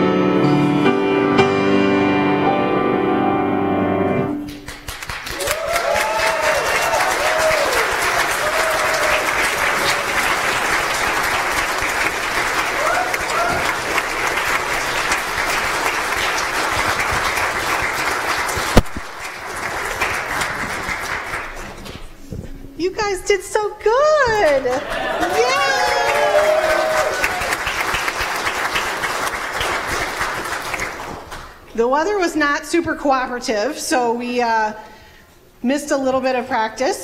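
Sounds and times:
crowd applauding: 4.4 - 22.0, 24.3 - 31.6
people whooping: 5.3 - 10.6, 12.7 - 14.0, 24.7 - 27.7.

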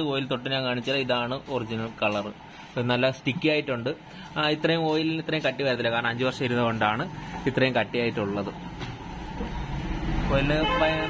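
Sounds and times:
man speaking: 0.0 - 8.7, 10.2 - 11.0.

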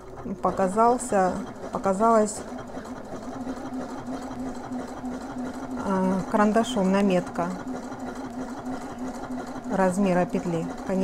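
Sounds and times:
sewing machine humming: 0.0 - 11.0.

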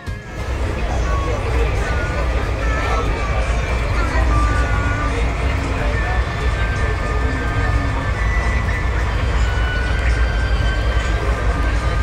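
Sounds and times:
train interior rumble: 0.0 - 12.0.

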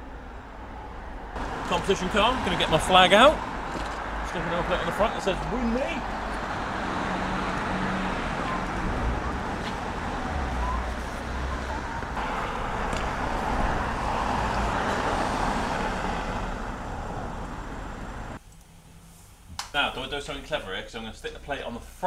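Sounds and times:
roadside traffic noise: 0.0 - 22.0.

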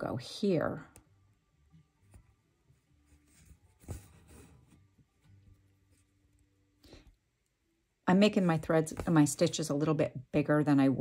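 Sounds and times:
needle and thread rustling through cloth: 2.0 - 6.5.

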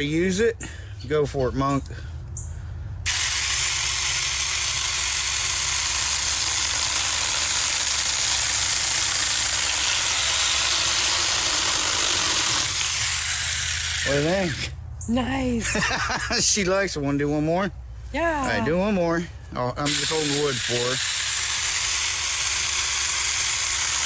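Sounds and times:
mini chainsaw cutting branch: 3.1 - 14.8, 19.8 - 24.0.

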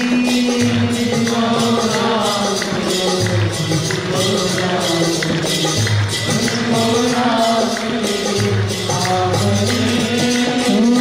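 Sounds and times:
small hand cymbals striking: 0.0 - 11.0.

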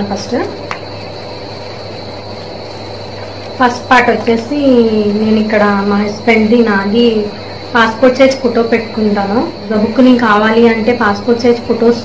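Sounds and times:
background hum and hiss: 0.0 - 12.0.

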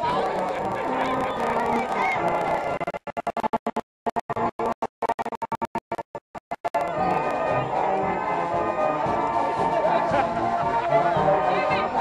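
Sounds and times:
crowd noise: 0.0 - 4.8, 5.9 - 12.0
marching band playing: 6.8 - 12.0.

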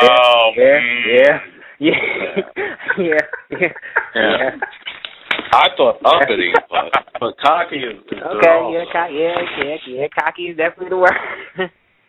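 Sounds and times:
people talking: 0.0 - 11.7.

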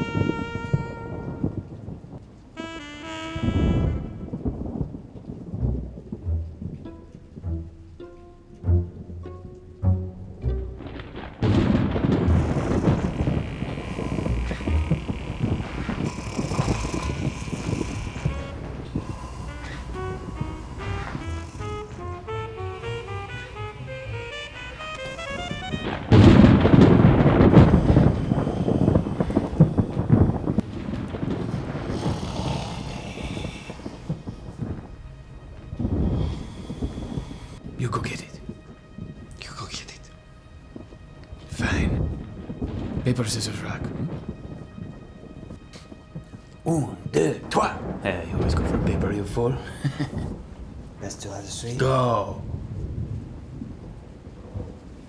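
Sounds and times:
brass phrase: 0.0 - 5.0, 10.1 - 38.6
low rumbling bed: 0.0 - 37.8
deep booms: 0.0 - 39.4, 40.6 - 51.3
light music of quick notes: 5.5 - 11.8, 16.2 - 29.4.

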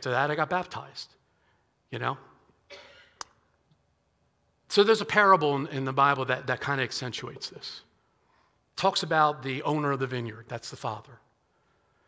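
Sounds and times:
man speaking: 0.0 - 1.2, 1.9 - 2.4, 4.7 - 7.9, 8.8 - 11.2
breath into headset microphone: 8.2 - 8.6.

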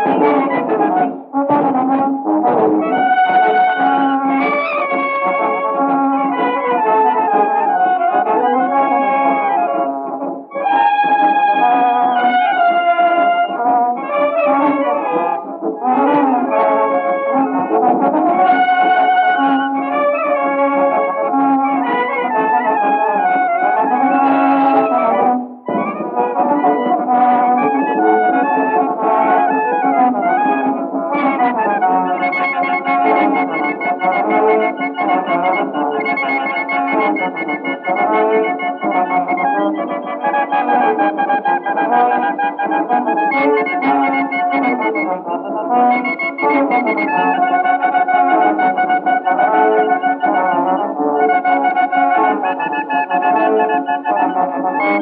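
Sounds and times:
brass band playing a march: 0.0 - 55.0.

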